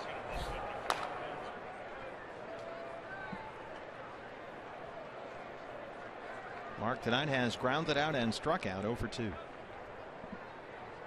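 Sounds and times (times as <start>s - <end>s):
crowd murmur: 0.0s - 7.9s, 9.2s - 11.0s.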